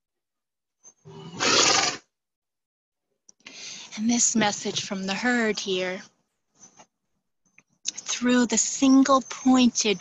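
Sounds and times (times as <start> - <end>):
horse snorting through nostrils: 1.0 - 2.1.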